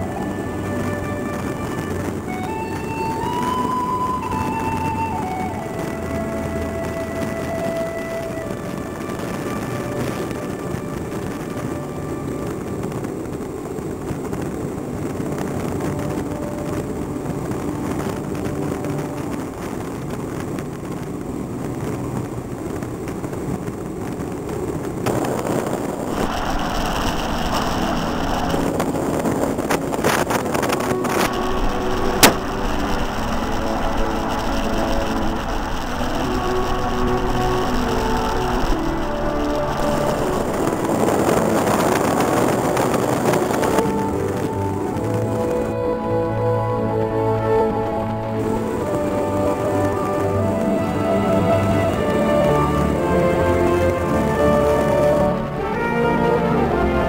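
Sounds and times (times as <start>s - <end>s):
wind and road noise: 0.0s - 57.0s.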